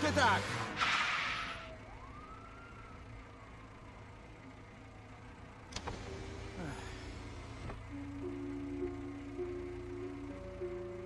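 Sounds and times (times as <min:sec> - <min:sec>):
car pulling away: 0:00.0 - 0:11.0
distant siren wail: 0:00.8 - 0:06.8, 0:07.9 - 0:11.0.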